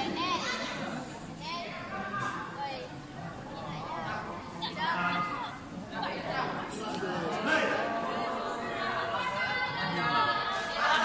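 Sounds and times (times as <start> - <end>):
young voices chattering: 0.0 - 11.0.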